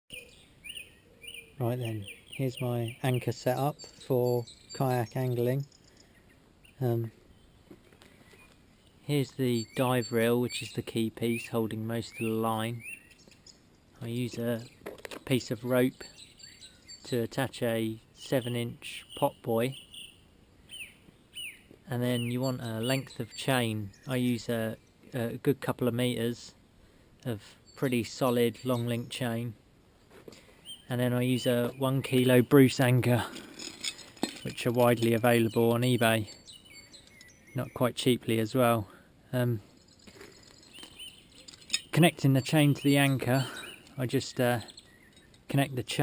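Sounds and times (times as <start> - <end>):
small bird chirping: 0.1 - 17.5, 18.2 - 25.3, 30.3 - 38.4, 39.4 - 46.0
faint outdoor background noise: 0.1 - 46.0
chain clinking on concrete: 33.2 - 35.1, 39.6 - 42.0, 44.6 - 45.5.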